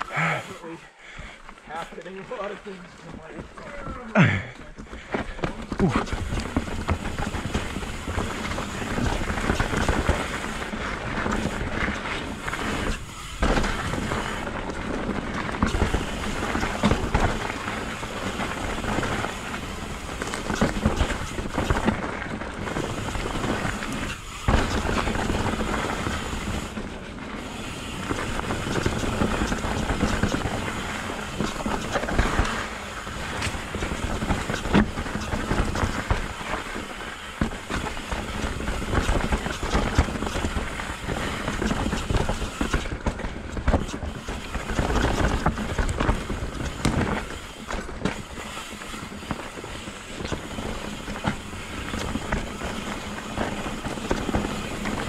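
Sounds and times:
bike tyres crunching over dirt: 0:00.0 - 0:55.0
bike knocks and rattles: 0:03.1 - 0:55.0.

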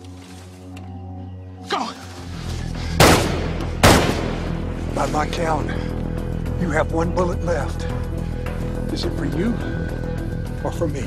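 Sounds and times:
low dramatic score music: 0:00.0 - 0:11.0
gunshots with echoing tail: 0:03.0 - 0:04.7.

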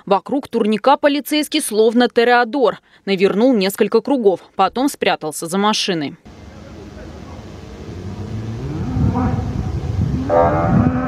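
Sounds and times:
cow mooing: 0:07.3 - 0:11.0.

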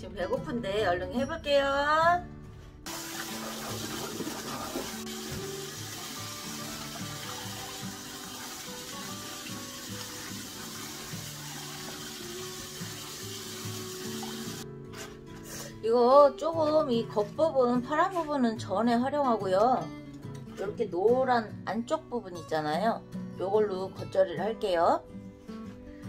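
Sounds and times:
tap water running into a sink: 0:02.9 - 0:14.6
water splashing over leaves: 0:02.9 - 0:14.6.

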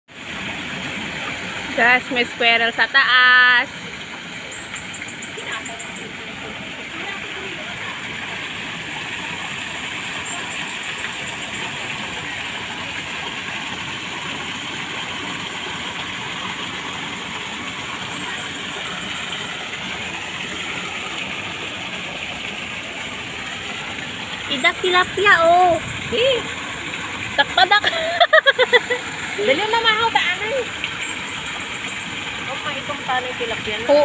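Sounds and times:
waterfall pouring over rocks: 0:00.1 - 0:34.0.

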